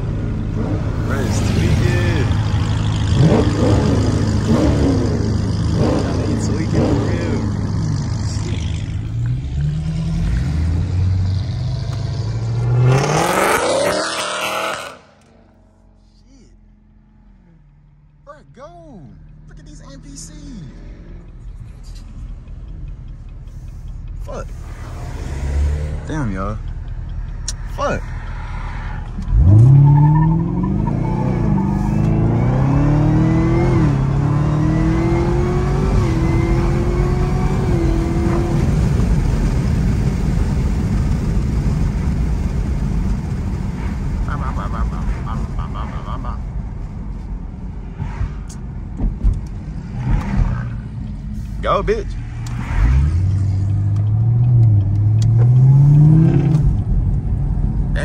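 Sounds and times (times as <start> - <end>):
car engine at full throttle: 0.0 - 58.0
road and wind noise: 0.0 - 58.0.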